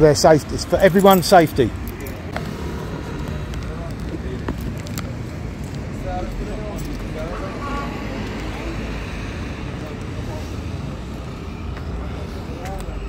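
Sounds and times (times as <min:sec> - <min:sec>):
indistinct voices talking: 0:00.0 - 0:13.0
street traffic rumble: 0:00.0 - 0:13.0.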